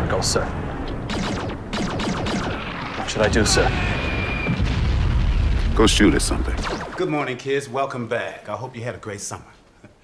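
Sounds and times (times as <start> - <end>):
distant artillery fire and explosions: 0.0 - 7.1.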